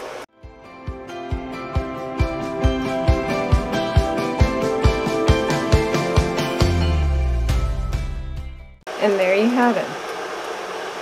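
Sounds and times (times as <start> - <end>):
woman's voice: 9.0 - 10.0.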